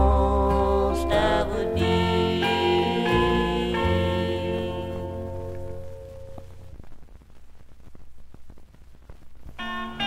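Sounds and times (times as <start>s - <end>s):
gospel song chord: 0.0s - 6.4s
vinyl crackle and clicks: 0.0s - 10.0s.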